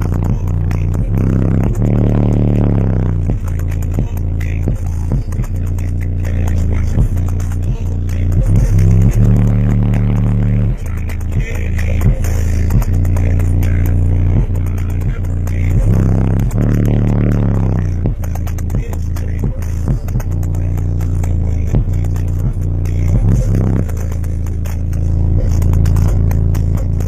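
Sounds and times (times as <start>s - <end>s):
loud bass-heavy music: 0.0s - 27.0s.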